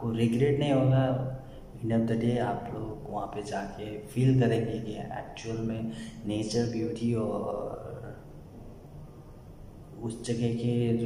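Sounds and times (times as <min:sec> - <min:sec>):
man speaking: 0:00.0 - 0:08.2, 0:09.9 - 0:11.0.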